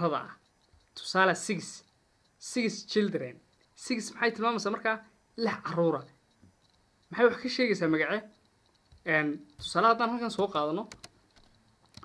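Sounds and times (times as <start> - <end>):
person speaking: 0.0 - 11.2
computer keyboard key clicks: 8.3 - 12.0.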